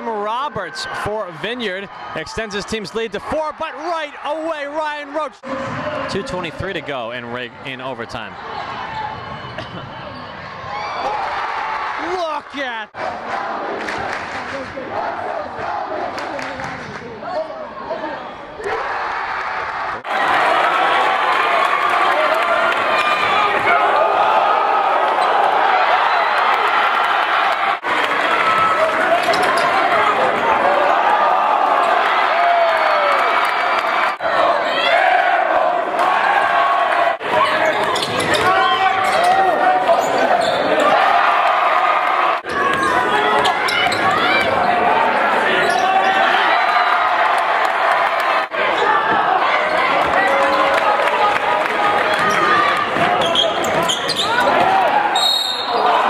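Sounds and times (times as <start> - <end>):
crowd shouting and cheering: 0.0 - 56.0.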